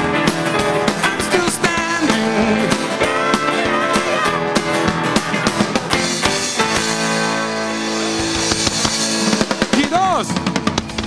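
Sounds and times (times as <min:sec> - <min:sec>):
rock band sustained chord: 0:00.0 - 0:11.0
drum hits: 0:00.2 - 0:11.0.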